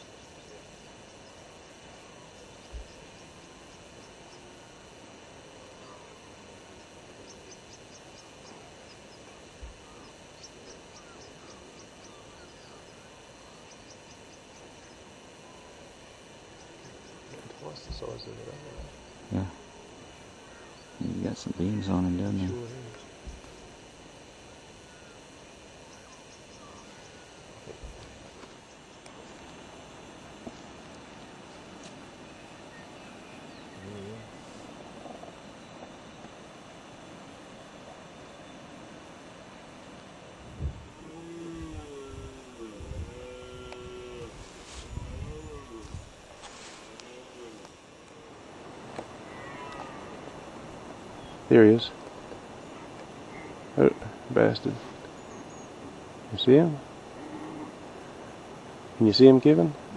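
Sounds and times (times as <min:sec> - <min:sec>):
steady background hiss: 0:00.0 - 0:59.9
stag roaring: 0:40.9 - 0:44.5, 0:57.1 - 0:57.9.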